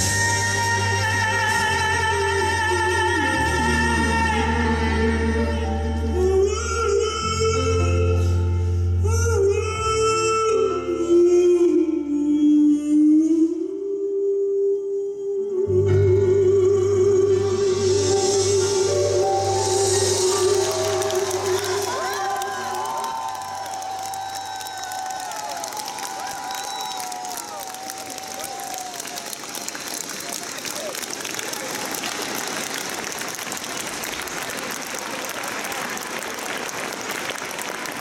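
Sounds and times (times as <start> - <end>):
soft live band accompaniment: 0.0 - 13.8, 15.5 - 31.1
male singer holding long note: 0.0 - 29.0
audience applauding: 19.7 - 38.0.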